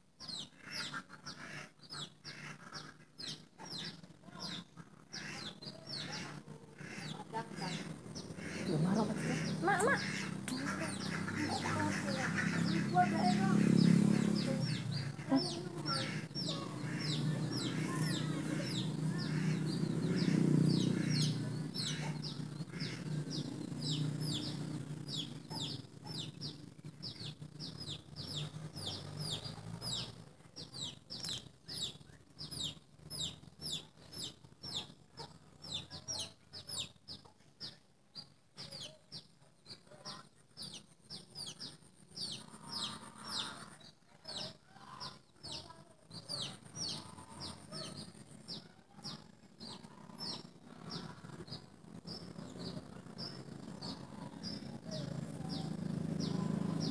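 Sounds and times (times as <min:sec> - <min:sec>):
birds chirping rapidly: 0:00.0 - 0:56.9.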